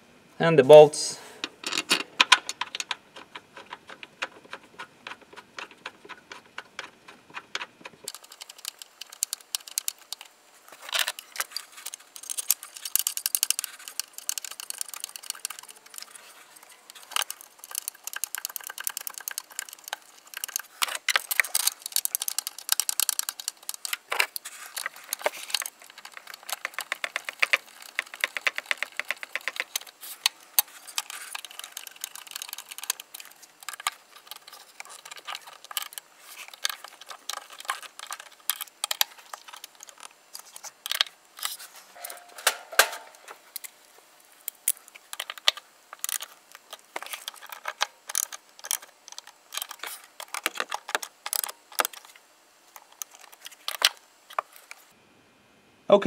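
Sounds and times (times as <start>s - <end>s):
hand ratchet clicking: 12.2s - 16.0s, 16.9s - 24.0s, 24.8s - 40.1s.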